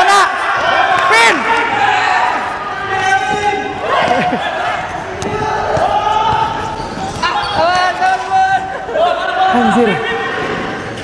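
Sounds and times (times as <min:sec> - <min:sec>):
players calling and shouting: 0:00.0 - 0:11.0
ball bouncing on court floor: 0:05.1 - 0:07.8.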